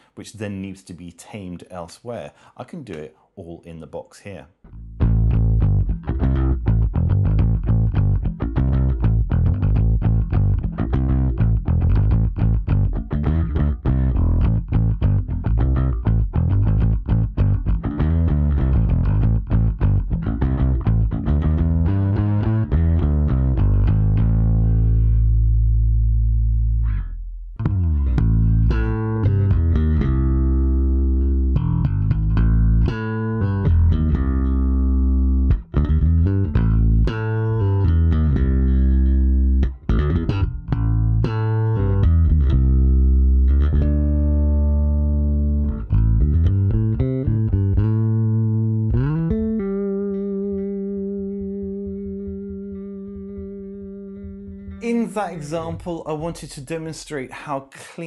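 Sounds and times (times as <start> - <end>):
electric bass guitar slapped: 4.7 - 54.8.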